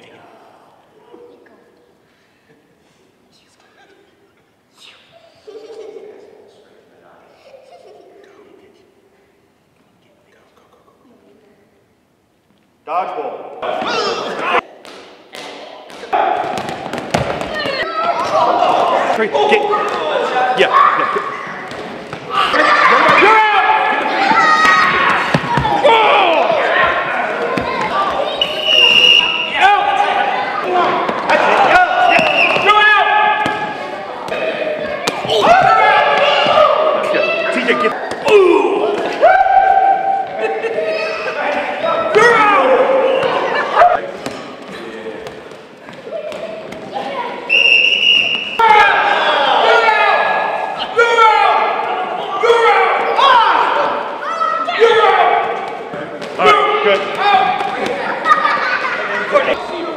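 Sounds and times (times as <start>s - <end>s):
balls bouncing on hardwood floor: 14.8s - 18.3s
players shouting and screaming: 17.4s - 44.0s, 47.4s - 55.8s.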